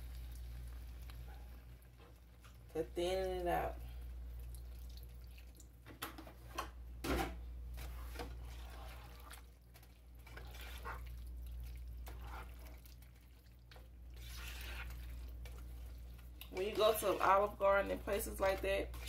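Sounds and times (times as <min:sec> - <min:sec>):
low steady hum: 0:00.0 - 0:19.0
liquid splashing: 0:07.8 - 0:19.0
wet squelching: 0:07.8 - 0:19.0.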